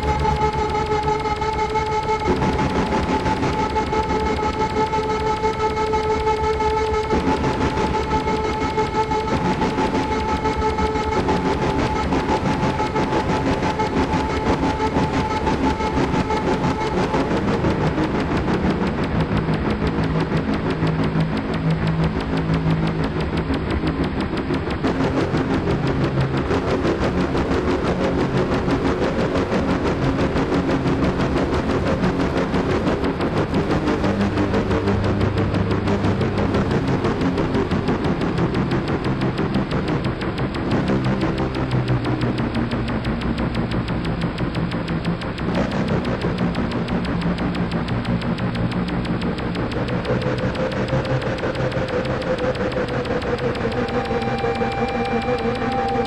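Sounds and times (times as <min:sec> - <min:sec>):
experimental electronic drone music: 0:00.0 - 0:56.0.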